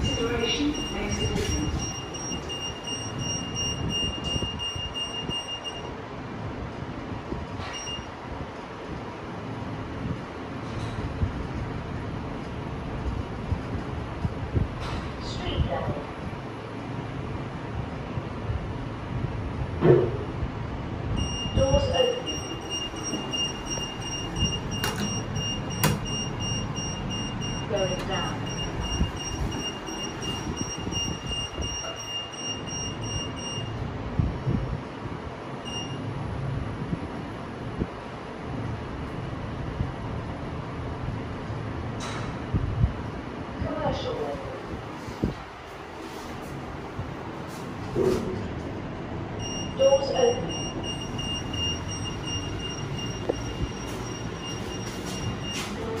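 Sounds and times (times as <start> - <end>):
lift beeper rapid beeping: 0.0 - 6.0, 21.2 - 33.8, 49.4 - 56.0
lift car rumble: 0.0 - 56.0
steady high-pitched tone: 21.2 - 33.7.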